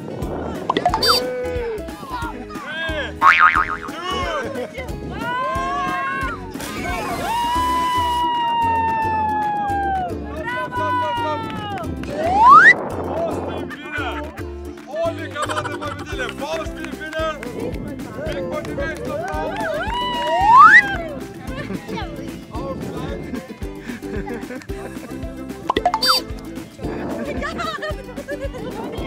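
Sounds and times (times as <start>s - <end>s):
background music with steady beat: 0.2s - 10.2s, 13.6s - 29.0s
cartoon boing sounds: 0.7s - 1.3s, 3.2s - 4.0s, 25.7s - 26.2s
quick rising whistle: 12.4s - 12.8s, 20.4s - 20.9s.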